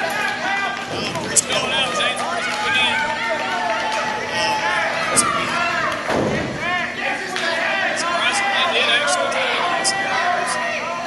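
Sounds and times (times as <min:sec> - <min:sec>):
echoing voices and shouts: 0:00.0 - 0:11.0.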